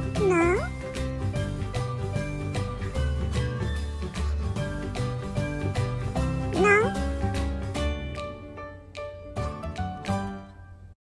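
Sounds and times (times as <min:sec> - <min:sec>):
dog whining: 0:00.0 - 0:00.8, 0:06.6 - 0:07.0
background music with steady beat: 0:00.0 - 0:10.9.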